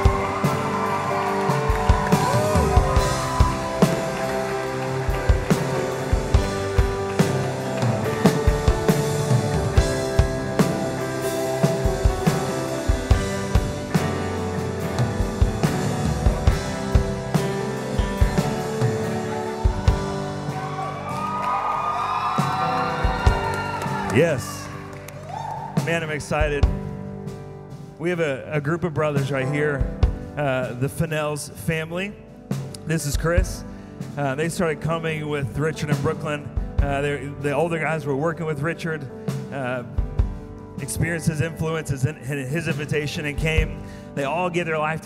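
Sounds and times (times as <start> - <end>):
low drum beats: 0.0 - 21.6, 22.2 - 24.5, 25.3 - 27.2
held keyboard chords: 0.0 - 45.0.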